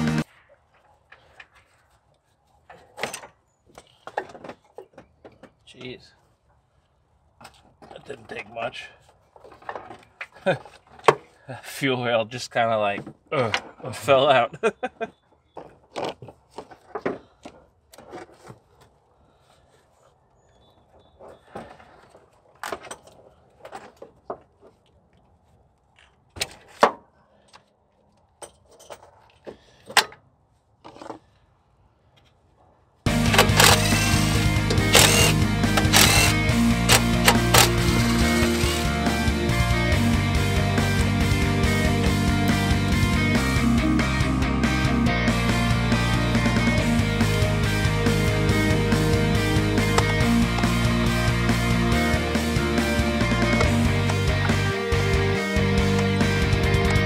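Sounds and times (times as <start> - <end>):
loud music with steady beat: 0.0 - 0.2, 33.1 - 57.0
clicks and knocks of engine parts: 2.6 - 5.9.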